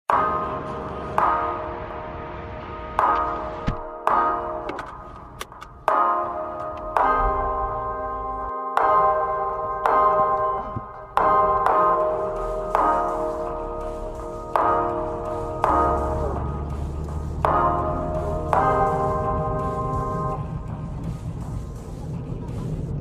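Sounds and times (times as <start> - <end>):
chime-like chords: 0.1 - 21.6
deep bass: 10.6 - 23.0.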